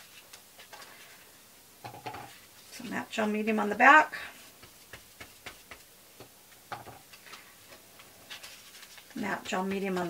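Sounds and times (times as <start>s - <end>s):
paintbrush tapping on paper: 4.6s - 7.0s.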